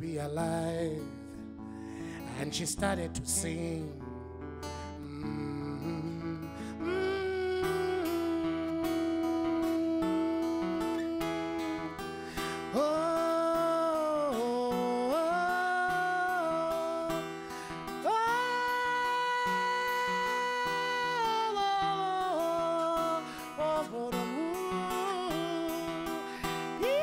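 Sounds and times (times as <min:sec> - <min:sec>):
man singing: 0:00.0 - 0:27.0
plucked acoustic guitar: 0:00.0 - 0:27.0.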